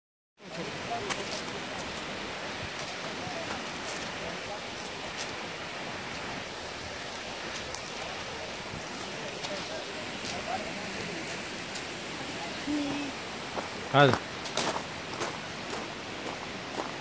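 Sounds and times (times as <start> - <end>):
waterfall rushing onto rock: 0.4 - 17.0.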